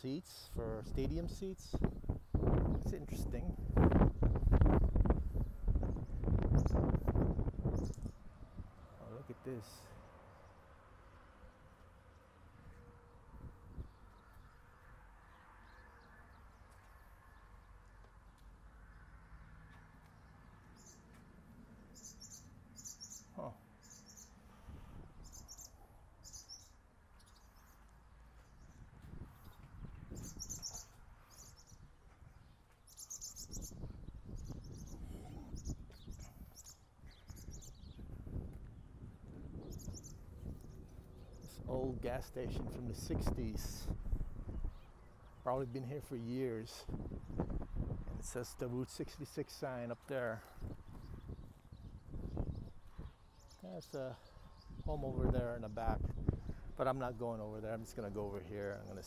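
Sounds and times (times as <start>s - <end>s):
small birds chirping: 0.0s - 59.0s.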